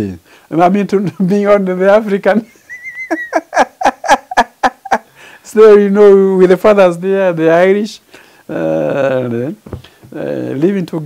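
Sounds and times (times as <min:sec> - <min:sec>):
man laughing heartily: 0:02.4 - 0:05.2.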